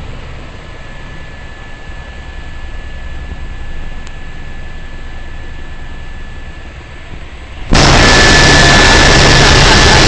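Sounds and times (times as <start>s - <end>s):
helicopter engine and rotor: 0.0s - 10.0s.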